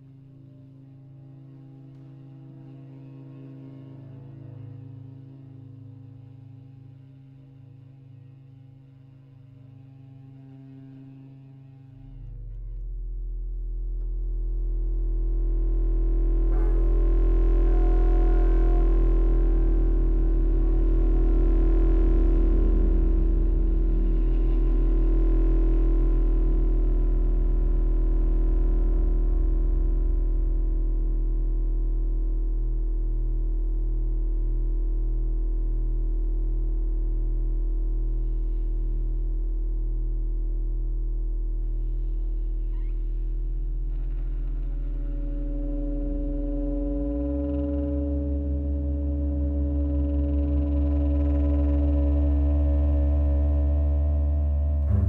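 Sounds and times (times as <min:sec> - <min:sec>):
bowed double bass: 0:09.5 - 0:55.0
synthesizer drone: 0:15.3 - 0:29.7, 0:45.7 - 0:55.0
theremin: 0:15.9 - 0:27.4, 0:45.3 - 0:55.0
saxophone: 0:16.4 - 0:26.8, 0:45.5 - 0:55.0.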